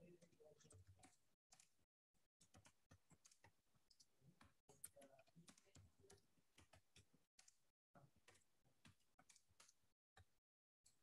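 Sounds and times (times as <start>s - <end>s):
computer keyboard typing: 2.4s - 7.6s.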